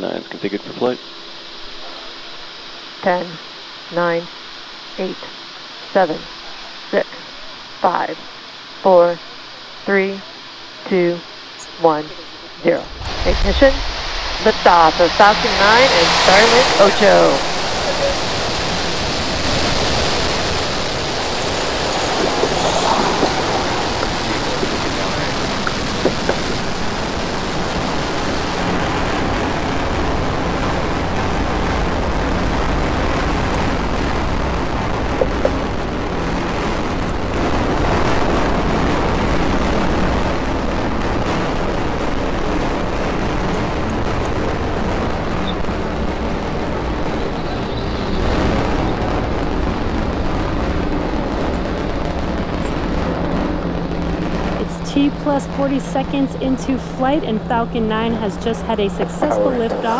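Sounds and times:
steady hiss: 0.0 - 53.3
distant rocket engines rumbling: 10.9 - 59.9.

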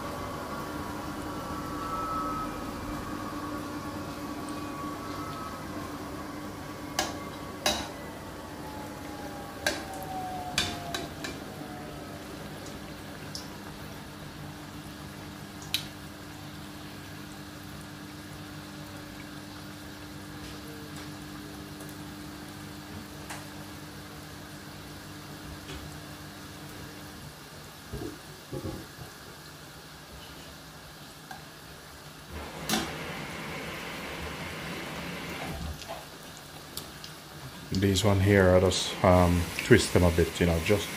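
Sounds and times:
oil sizzling: 0.0 - 25.3, 26.4 - 40.9.

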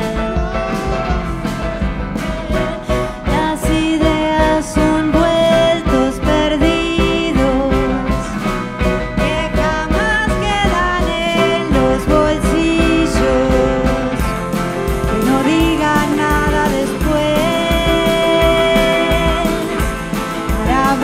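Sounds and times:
drums: 0.0 - 21.0
electric guitar: 0.0 - 21.0
melodic lead line: 0.0 - 21.0
piano: 0.0 - 21.0.

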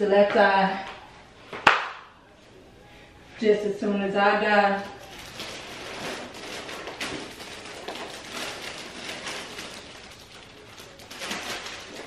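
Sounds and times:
bag and wrapping rustling: 4.7 - 12.0.

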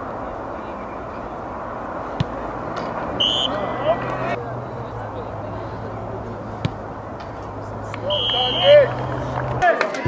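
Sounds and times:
crowd murmur: 0.0 - 10.0
referee's whistle blast: 3.2 - 3.9, 8.1 - 8.8.

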